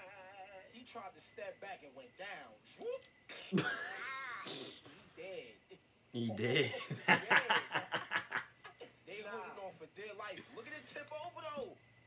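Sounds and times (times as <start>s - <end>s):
man laughing: 3.5s - 4.2s, 6.4s - 9.0s.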